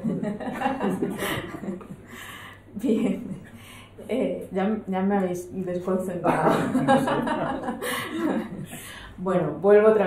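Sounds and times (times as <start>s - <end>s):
people laughing and chuckling: 0.0s - 2.2s, 6.3s - 8.9s.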